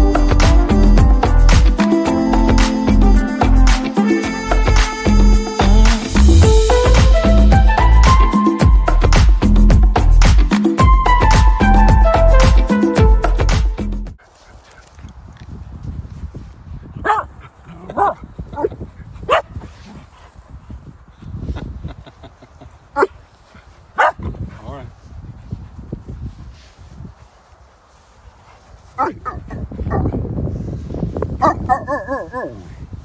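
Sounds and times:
background music: 0.0s - 14.2s
dogs barking and yipping: 17.0s - 20.0s, 23.0s - 24.3s, 28.8s - 30.1s, 31.4s - 32.7s.

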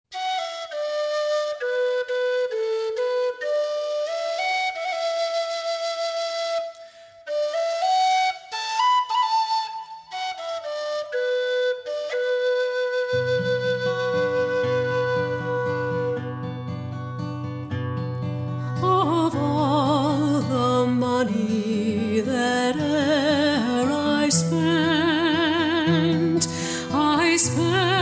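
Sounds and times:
solo flute melody: 0.1s - 17.2s.

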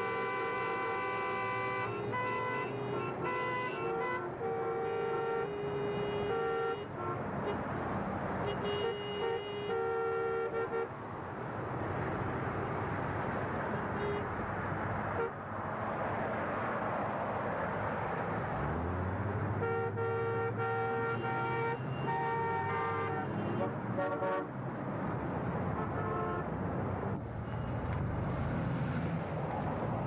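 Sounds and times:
car horns honking: 0.0s - 7.7s, 8.4s - 11.0s, 13.7s - 14.3s, 15.1s - 15.4s, 19.5s - 24.5s, 25.8s - 26.5s
car engines and tyres: 0.0s - 30.0s.

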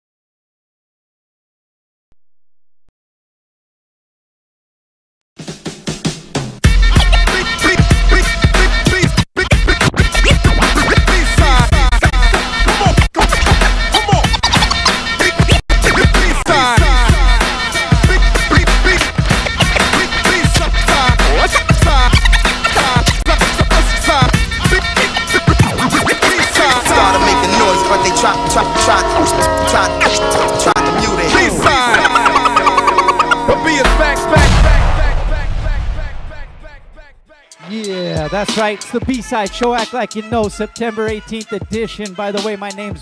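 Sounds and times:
heavy bass beat: 6.1s - 36.8s, 37.5s - 43.0s
turntable scratching: 6.7s - 27.8s, 29.2s - 34.6s
held chord: 26.6s - 34.6s.

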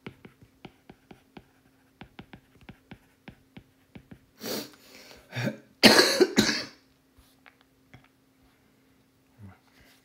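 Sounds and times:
person coughing: 5.2s - 6.8s.

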